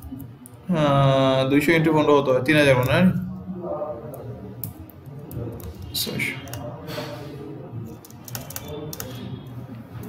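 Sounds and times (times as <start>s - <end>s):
low background murmur: 0.0s - 10.0s
keyboard keys clicking: 7.9s - 9.3s.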